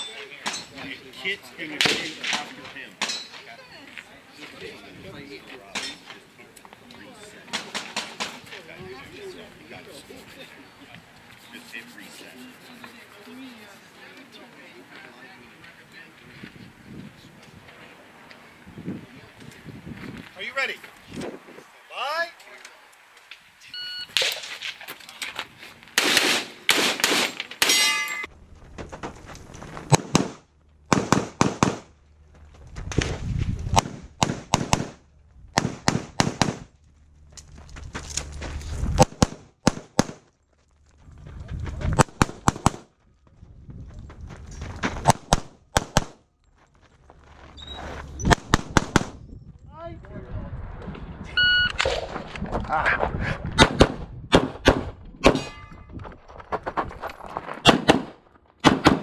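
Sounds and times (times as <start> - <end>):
pistol shots: 26.0 - 27.8, 29.9 - 31.9, 33.8 - 35.0, 35.6 - 36.7, 39.0 - 40.2, 42.0 - 42.8, 45.1 - 46.2, 48.3 - 49.2, 53.6 - 55.5, 57.6 - 59.0
bullets ringing on steel targets: 27.6 - 28.3.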